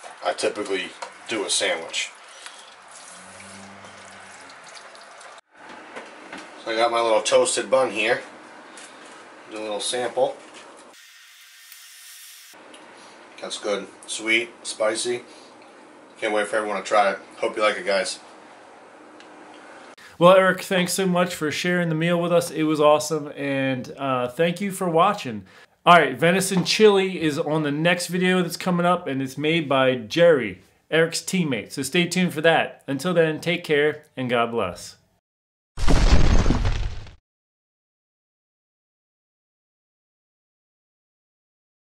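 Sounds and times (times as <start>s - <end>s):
stone shattering: 35.8s - 37.2s.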